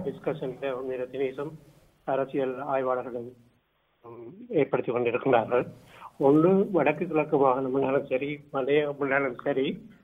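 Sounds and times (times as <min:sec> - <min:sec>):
man speaking: 0:00.0 - 0:03.4, 0:04.0 - 0:10.0.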